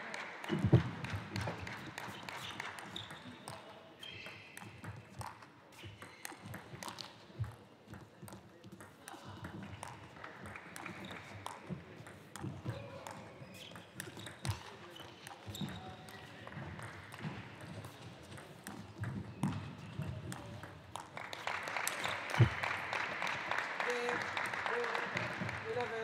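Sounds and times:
audience clapping: 0:00.0 - 0:03.0, 0:10.2 - 0:11.6, 0:20.9 - 0:26.0.

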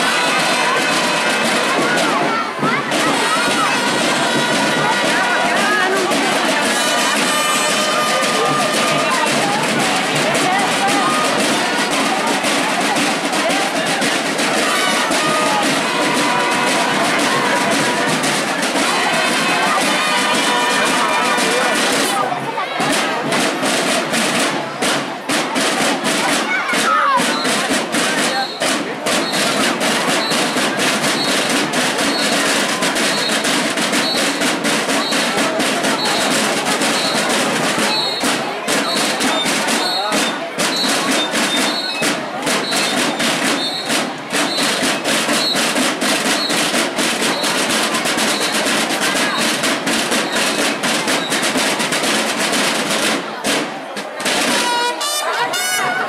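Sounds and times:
marching snare and bass drums: 0:00.0 - 0:56.0.

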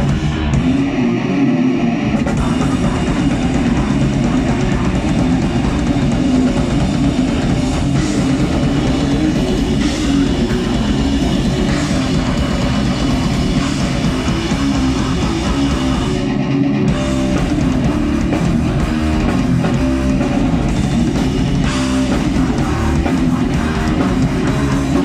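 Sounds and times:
bass guitar: 0:00.0 - 0:25.0
distorted electric guitar: 0:00.0 - 0:25.0
drum kit: 0:00.0 - 0:25.0.

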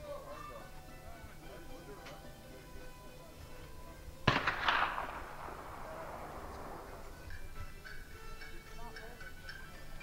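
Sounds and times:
rifle shot with rolling echo: 0:04.2 - 0:07.4.

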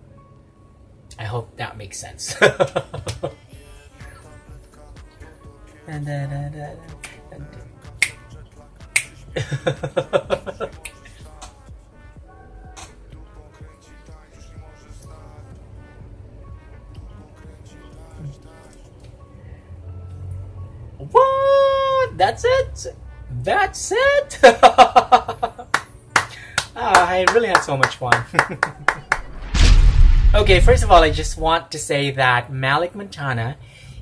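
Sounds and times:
rap music: 0:03.2 - 0:20.0, 0:29.0 - 0:31.5
man singing high note: 0:03.4 - 0:09.5, 0:10.5 - 0:19.0
finger snaps: 0:08.0 - 0:09.2
burst of laughter: 0:09.4 - 0:10.8.

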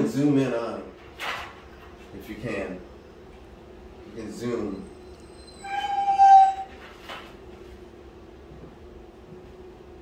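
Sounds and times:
puppy whining: 0:04.8 - 0:07.0.

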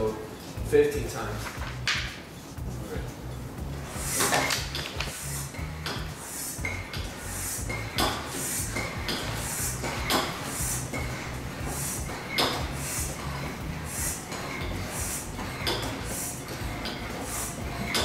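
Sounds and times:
air pump hissing: 0:03.6 - 0:18.0
pump squeak: 0:03.9 - 0:18.0.

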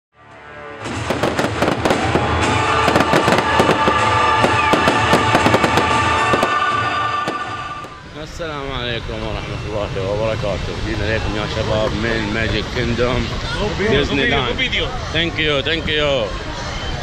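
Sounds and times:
music soundtrack: 0:00.1 - 0:08.3
fireworks crackling and banging: 0:00.8 - 0:08.1.

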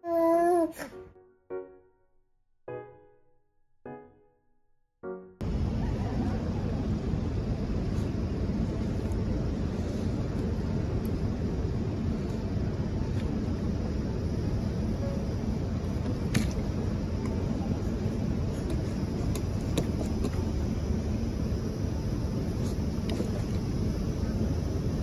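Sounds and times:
steady low outdoor rumble: 0:05.4 - 0:25.0.

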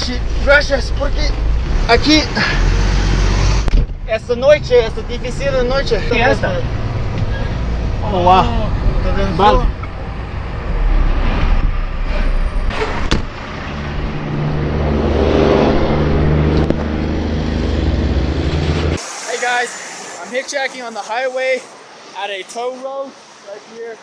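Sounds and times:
large vehicle engine drone: 0:00.0 - 0:23.6
highway traffic: 0:00.0 - 0:24.0
person speaking: 0:04.2 - 0:06.7.

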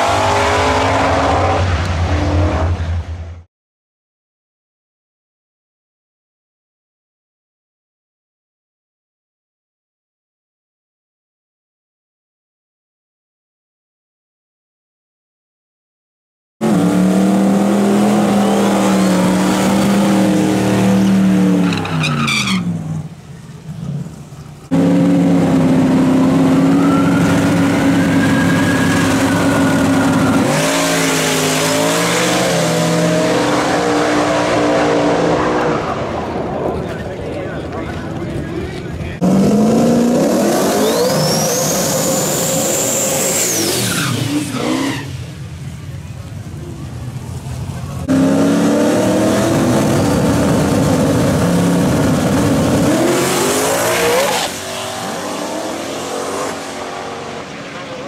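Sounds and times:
drag race engines revving: 0:00.0 - 0:03.3, 0:16.6 - 0:58.0.

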